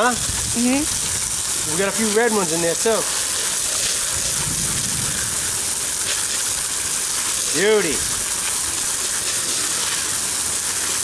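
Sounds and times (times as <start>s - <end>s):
water spray hissing on potatoes: 0.0s - 11.0s.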